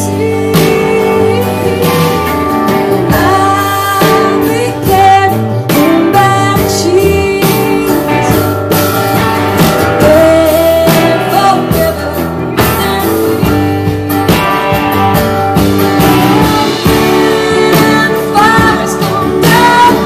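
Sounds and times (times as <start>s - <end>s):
live band playing: 0.0s - 20.0s.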